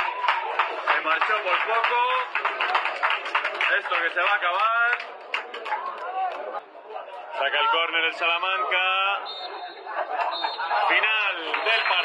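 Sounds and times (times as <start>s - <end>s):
man commentating: 10.8s - 12.0s.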